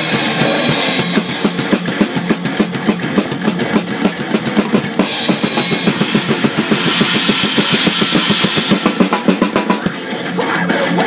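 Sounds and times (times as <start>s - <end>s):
fast drum strokes: 0.0s - 11.0s
cymbal wash: 5.0s - 10.0s.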